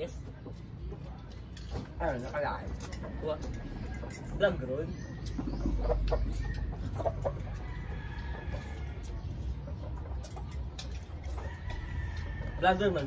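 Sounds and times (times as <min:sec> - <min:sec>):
chickens clucking: 0:00.0 - 0:13.0.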